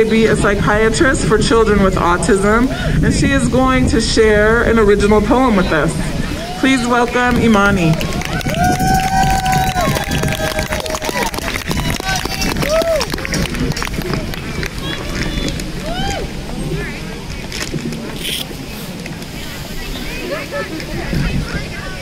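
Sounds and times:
voices calling out and cheering: 0.0s - 22.0s.

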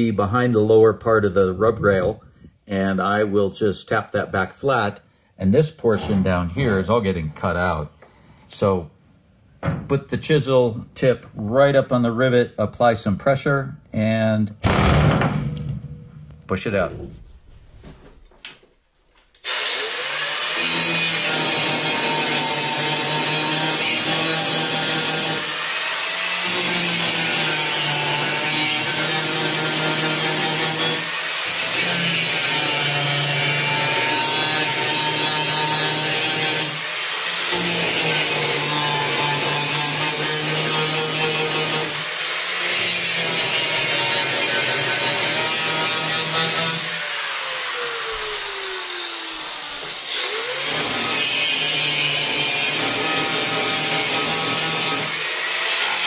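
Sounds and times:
angle grinder grinding metal: 19.4s - 56.0s.

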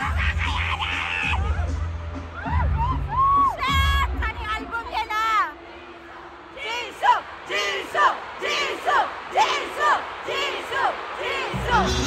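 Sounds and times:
crowd chanting in rhythm: 4.9s - 12.0s.

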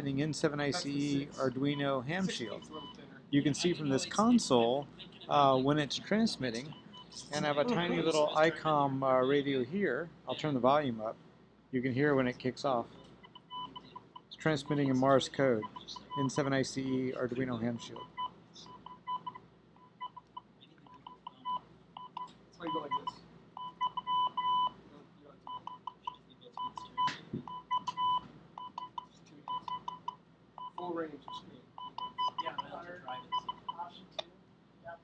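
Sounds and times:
morse code beeps from radio: 13.2s - 15.0s, 17.9s - 24.8s, 25.5s - 33.8s.

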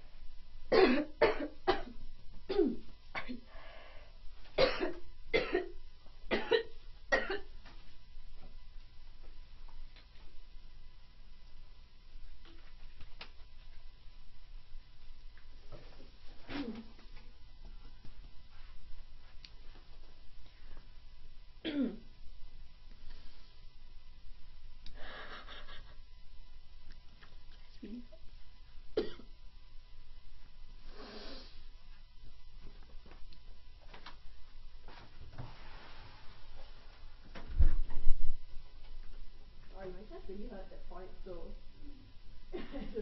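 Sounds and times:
woman coughing: 0.7s - 3.5s, 4.6s - 7.5s, 21.6s - 22.1s, 29.0s - 29.3s
person clearing throat: 0.8s - 3.5s, 4.6s - 7.5s, 16.5s - 16.9s, 21.6s - 22.1s, 29.0s - 29.3s.

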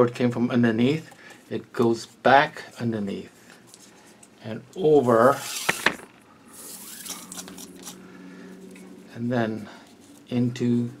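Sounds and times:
cord rubbing and rustling: 1.4s - 11.0s.

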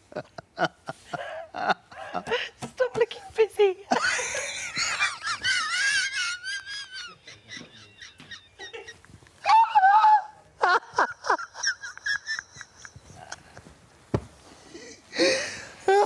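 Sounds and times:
man and woman laughing: 0.1s - 2.5s, 3.9s - 9.4s, 10.6s - 13.7s.

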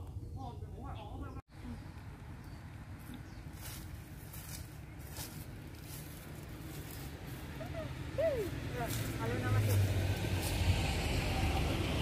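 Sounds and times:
vehicle engine rumbling past: 1.5s - 12.0s.

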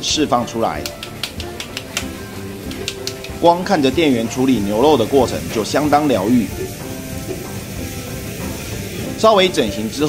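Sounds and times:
background music with held tones: 0.0s - 10.0s
slaps of raw minced meat: 0.8s - 3.4s.

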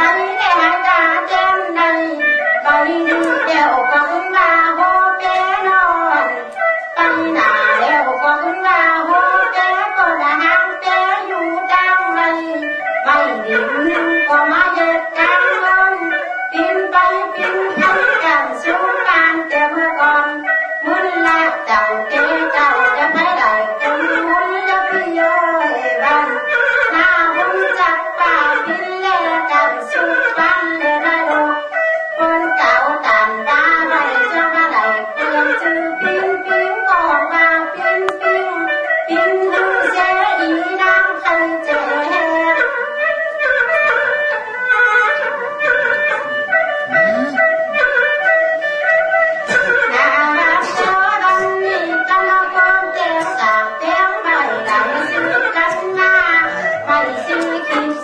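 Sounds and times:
person singing: 0.0s - 42.9s, 44.9s - 48.2s, 49.4s - 58.0s
instrumental accompaniment: 0.0s - 58.0s.

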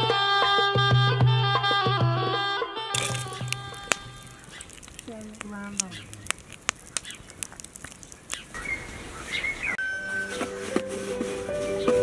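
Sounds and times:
music: 0.0s - 2.9s, 9.8s - 12.0s
bird whistled calls: 8.4s - 10.4s.

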